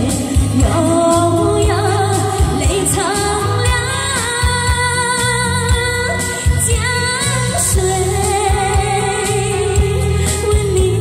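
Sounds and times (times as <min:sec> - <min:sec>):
backing track with drum beat: 0:00.0 - 0:11.0
woman singing a pop ballad: 0:00.0 - 0:11.0.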